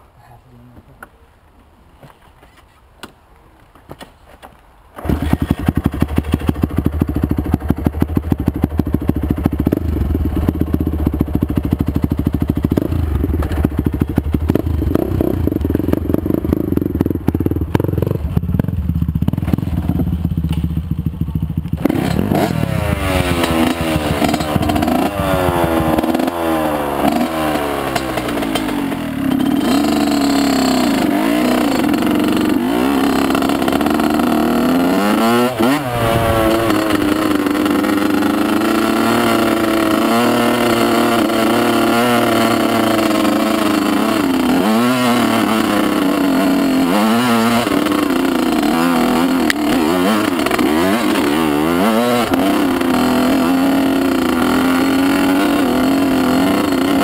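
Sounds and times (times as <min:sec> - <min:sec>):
two-stroke motorcycle engine revving: 0:05.0 - 0:57.0.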